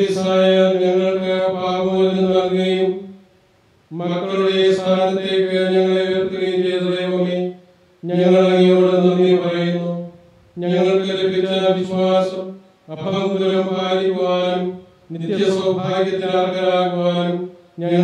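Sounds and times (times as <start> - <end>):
man chanting: 0.0 - 3.2, 3.9 - 18.0.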